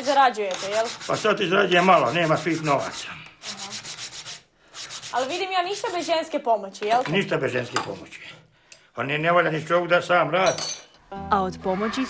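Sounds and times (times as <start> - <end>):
sandpaper rubbing wood: 0.0 - 6.3.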